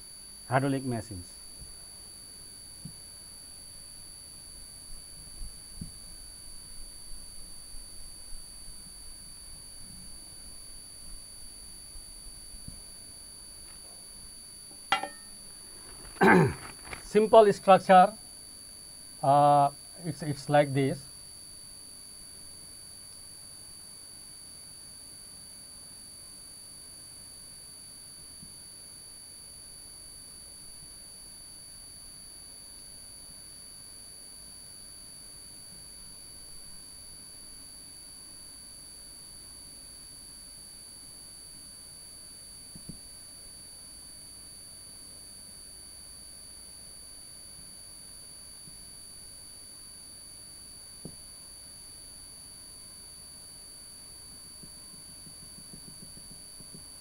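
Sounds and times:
faint high-pitched whine: 0.0s - 57.0s
marker tapping on whiteboard: 54.6s - 56.9s.

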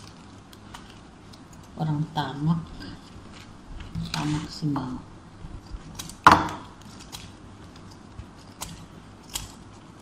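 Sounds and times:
scissors cutting paper: 5.7s - 6.2s, 6.8s - 10.0s
scissor blades clicking: 5.9s - 6.2s, 8.5s - 9.6s.

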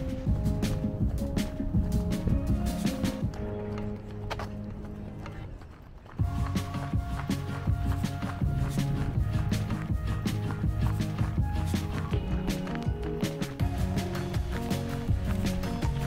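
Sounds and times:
background music with beat: 0.0s - 4.8s, 6.2s - 16.0s.

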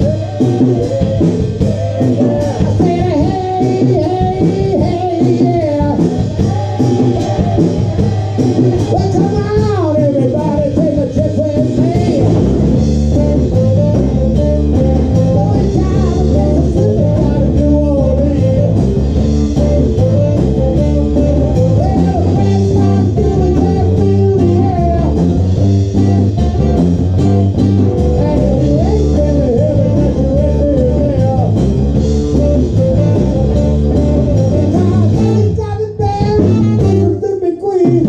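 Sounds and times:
blues-rock band playing live: 0.0s - 38.0s
person singing: 0.0s - 38.0s.

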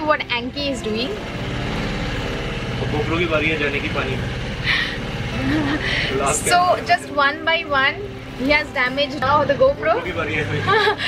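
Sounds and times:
boat engine humming: 0.0s - 11.0s.

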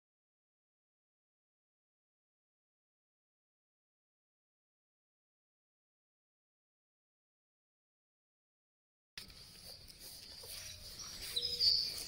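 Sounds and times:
garden ambience: 9.2s - 12.0s
small birds chirping: 9.2s - 12.0s.

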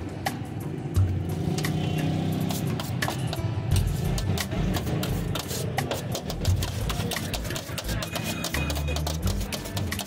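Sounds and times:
cutlery scraping on steel tray: 2.5s - 10.0s.

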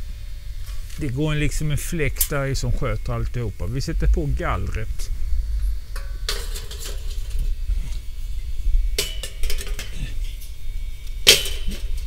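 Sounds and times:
low rumble: 2.6s - 9.0s
metal grill grate clanking: 6.0s - 7.5s, 9.0s - 10.2s, 11.2s - 12.0s.

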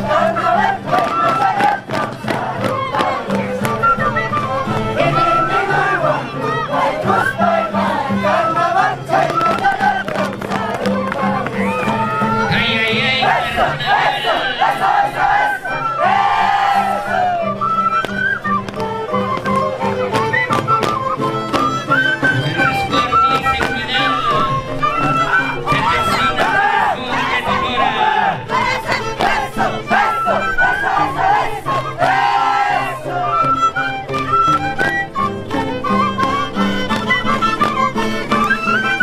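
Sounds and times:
string band with violins and harp: 0.0s - 39.0s
people whooping and shouting: 11.3s - 12.8s, 14.1s - 17.8s
group shouting: 13.1s - 17.5s, 25.8s - 33.4s.

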